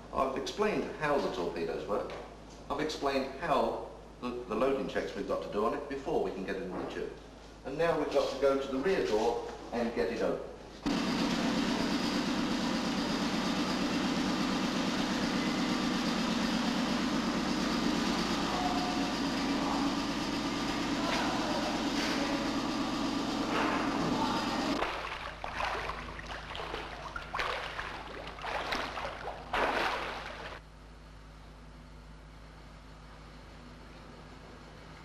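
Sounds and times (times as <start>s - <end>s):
machinery drone: 10.9s - 24.9s
water splashing and rushing: 24.8s - 30.6s.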